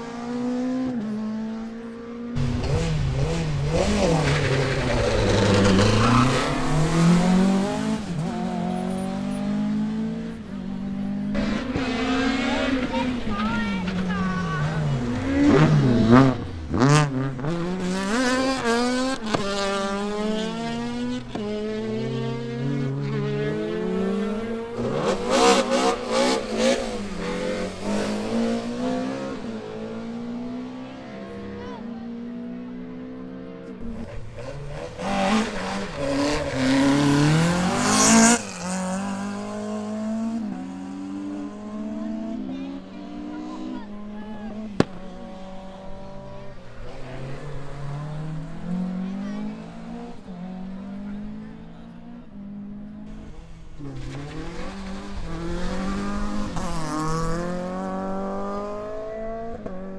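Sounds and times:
rally car engine revving hard: 0.0s - 31.6s, 33.8s - 52.2s, 52.8s - 59.9s.

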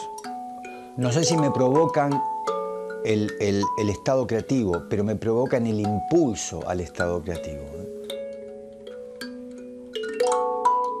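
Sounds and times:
struck notes ringing: 0.0s - 8.3s.

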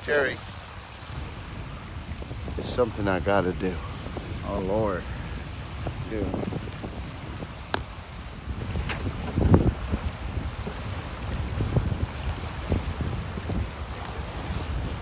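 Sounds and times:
waves lapping: 0.0s - 15.0s
wind buffeting microphone: 0.0s - 15.0s.

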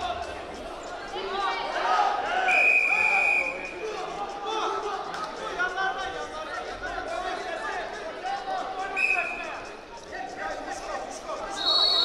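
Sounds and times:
people shouting in a hall: 0.0s - 12.0s.

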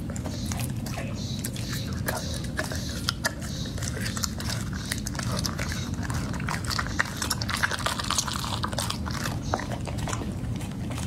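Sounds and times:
dog licking and chewing: 0.0s - 11.0s.

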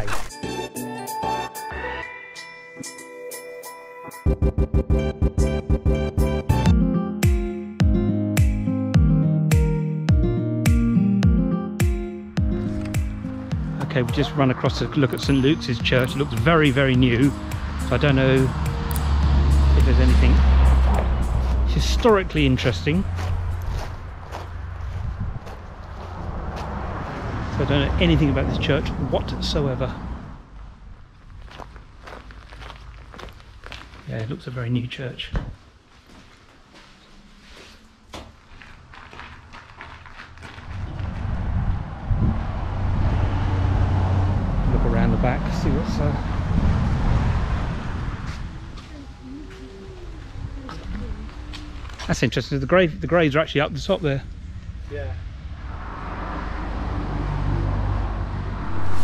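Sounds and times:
road vehicle approaching: 12.3s - 34.5s, 35.2s - 59.0s
footsteps on gravel: 22.7s - 27.1s, 31.2s - 34.4s, 35.9s - 41.2s.

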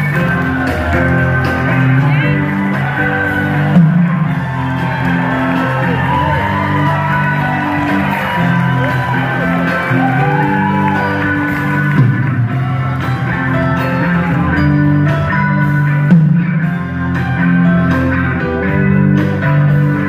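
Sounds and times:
audience whooping and cheering: 0.0s - 15.1s
live rock band playing: 0.0s - 20.0s.

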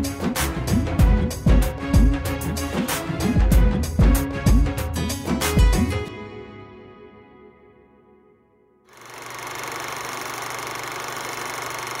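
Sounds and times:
music: 0.0s - 8.9s
film projector clatter: 8.9s - 12.0s.

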